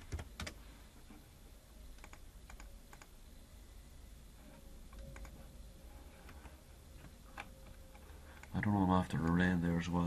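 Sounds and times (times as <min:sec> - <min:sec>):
faint computer keyboard typing: 0:00.0 - 0:00.6, 0:01.9 - 0:03.2, 0:04.9 - 0:05.5, 0:06.2 - 0:09.5.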